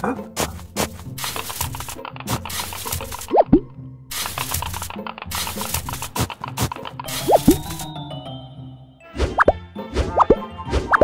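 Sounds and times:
tool crunching in sand and gravel: 0.4 - 3.4.

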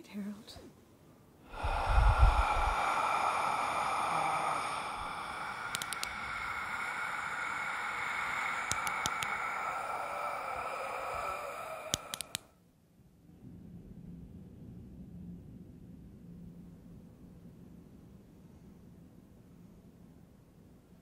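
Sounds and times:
eerie hissing drone: 1.4 - 12.6
faint ticks: 5.7 - 6.2, 8.7 - 9.3, 11.9 - 12.4.

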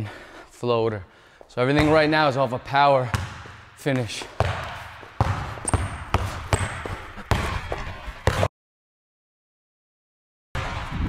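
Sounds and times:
basketball bouncing on hardwood: 1.7 - 2.3, 3.0 - 8.5.

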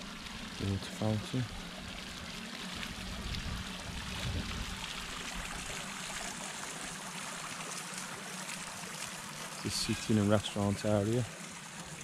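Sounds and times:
fountain splashing: 0.0 - 12.0.

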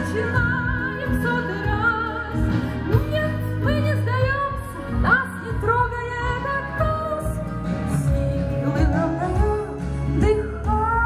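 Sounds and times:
woman singing: 0.0 - 11.0.

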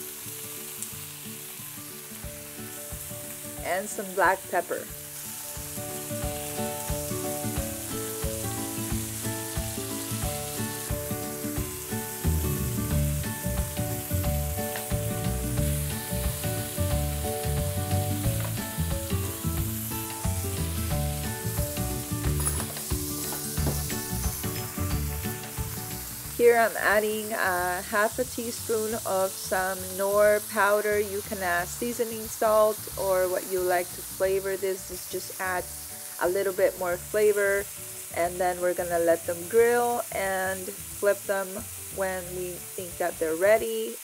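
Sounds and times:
background music: 0.0 - 44.0
tomatoes sizzling on a griddle: 0.0 - 44.0
bass beat: 11.6 - 25.4.

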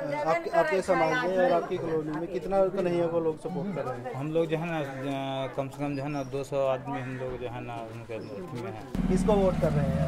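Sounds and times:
man speaking: 8.6 - 10.0.

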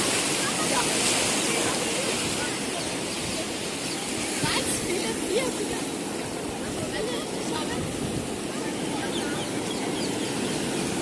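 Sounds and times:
ocean surf washing on sand: 0.0 - 11.0.

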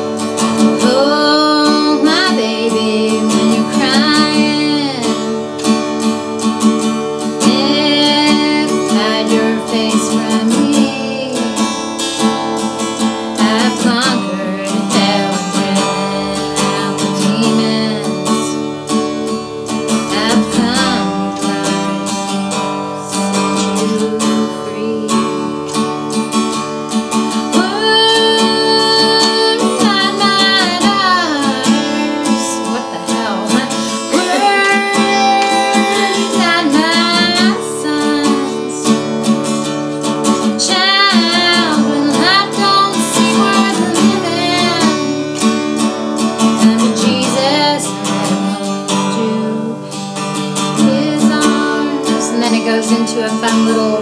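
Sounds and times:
woman singing: 0.0 - 26.5, 27.1 - 54.0
acoustic guitar strumming: 0.0 - 54.0.

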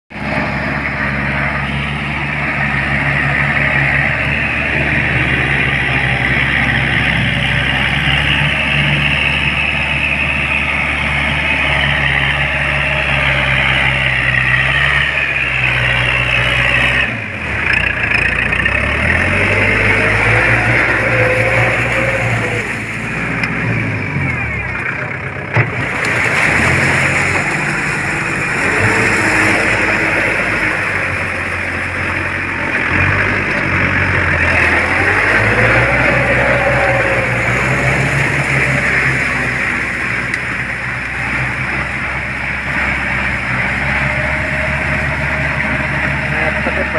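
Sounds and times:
tractor diesel engine under load: 0.0 - 46.9.

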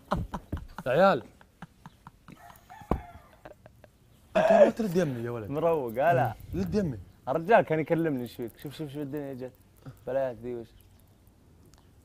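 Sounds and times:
rooster crowing faintly: 2.3 - 3.6.

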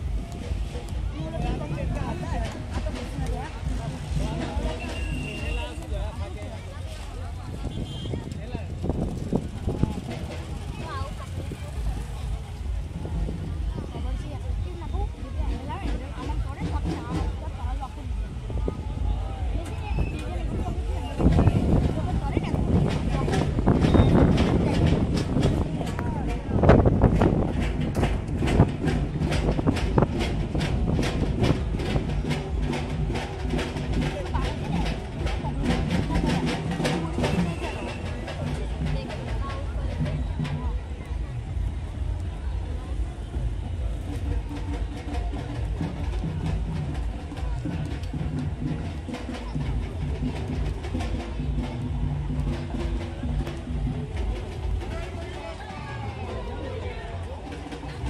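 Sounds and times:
fast rhythmic beat: 0.0 - 58.0
steady low rumble: 5.8 - 58.0.

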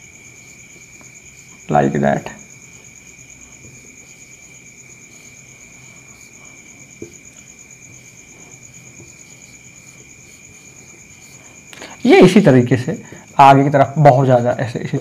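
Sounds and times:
crickets trilling: 0.0 - 15.0.

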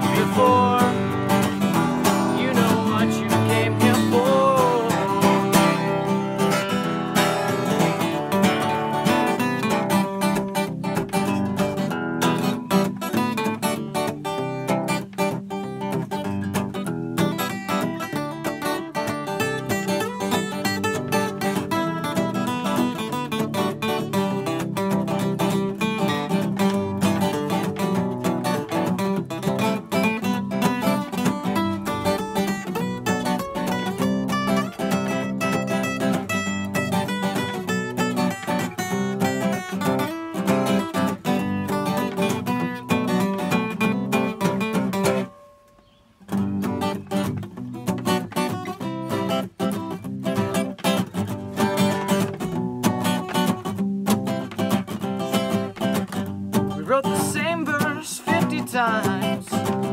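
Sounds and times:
acoustic guitars strumming: 0.0 - 59.9.

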